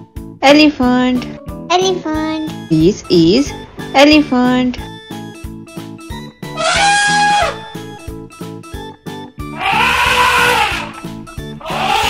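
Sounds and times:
children's music with steady beat: 0:00.0 - 0:12.0
elephant trumpeting: 0:06.6 - 0:07.7, 0:09.5 - 0:12.0.

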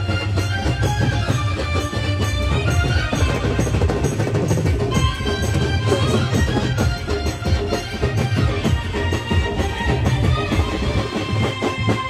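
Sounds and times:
fast drum beat: 0:00.0 - 0:12.0
live folk music: 0:00.0 - 0:12.0.

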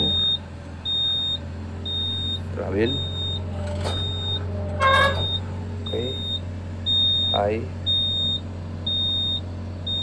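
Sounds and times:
engine running: 0:00.0 - 0:10.0
excavator alarm beeping: 0:00.0 - 0:10.0.

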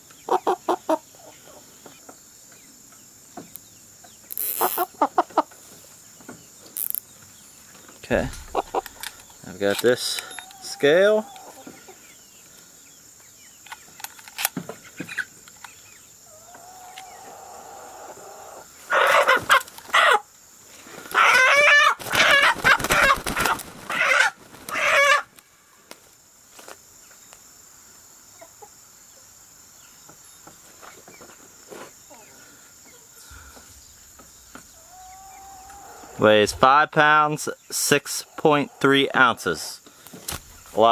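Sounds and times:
chicken squawking: 0:00.3 - 0:01.6, 0:04.4 - 0:05.5, 0:08.2 - 0:09.1, 0:16.3 - 0:20.3, 0:21.1 - 0:25.3, 0:34.8 - 0:36.2.

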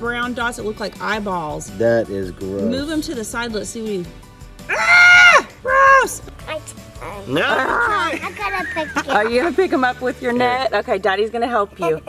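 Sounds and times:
young child crying out: 0:04.7 - 0:06.2.

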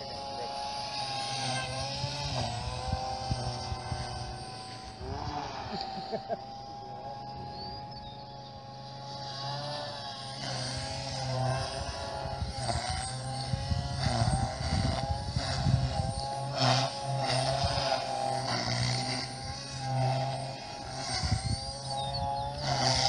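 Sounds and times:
rc helicopter motor whine: 0:00.0 - 0:23.0.

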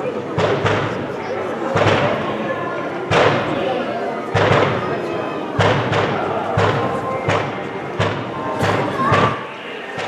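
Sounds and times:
fireworks bangs echoing: 0:04.3 - 0:05.0, 0:05.6 - 0:09.4.

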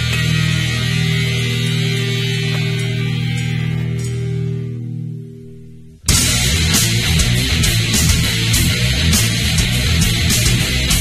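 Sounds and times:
distorted electric guitar drone: 0:00.0 - 0:11.0.

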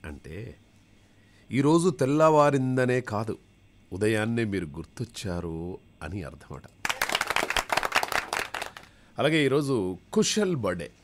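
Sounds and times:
rapid hand clapping: 0:06.8 - 0:08.9.

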